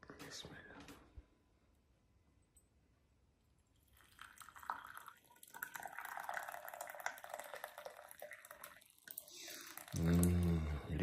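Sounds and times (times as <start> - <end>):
tea pouring into cup: 3.6 - 11.0.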